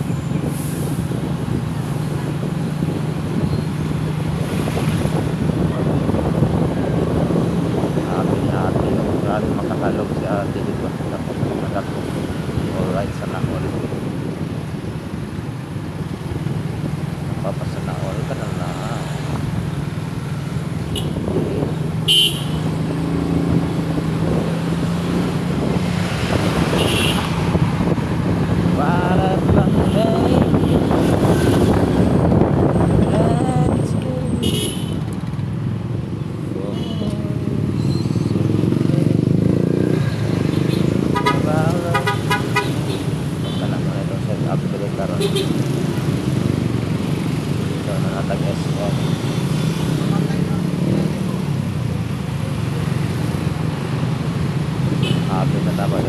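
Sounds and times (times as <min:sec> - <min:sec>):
engine and road hum: 0:00.0 - 0:56.0
vehicles passing: 0:00.0 - 0:56.0
car horn toot: 0:22.1 - 0:22.6, 0:26.8 - 0:27.2, 0:41.1 - 0:43.6.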